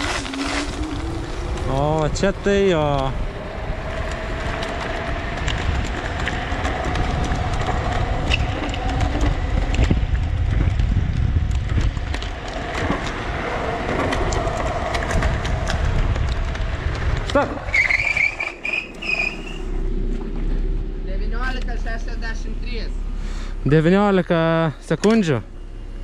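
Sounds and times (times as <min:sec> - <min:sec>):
tyre noise: 0:00.0 - 0:21.7
wind rumble on microphone: 0:00.0 - 0:26.0.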